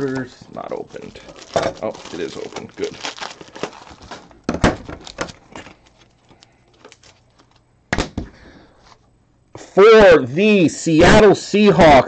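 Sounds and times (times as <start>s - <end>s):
plastic sleeves rustling: 0.0s - 7.7s.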